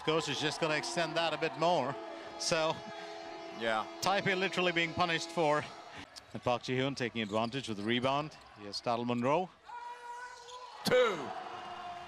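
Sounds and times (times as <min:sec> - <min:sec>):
steady held arena tones: 0:00.0 - 0:08.1.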